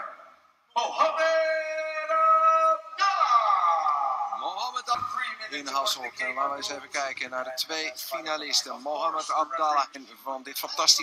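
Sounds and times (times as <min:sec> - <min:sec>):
man calling over public address: 0:00.0 - 0:11.0.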